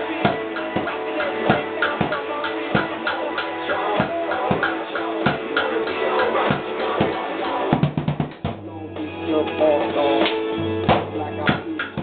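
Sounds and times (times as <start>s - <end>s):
reggae rock song with guitar: 0.0s - 12.0s
drums struck with sticks: 0.2s - 8.7s, 10.2s - 12.0s.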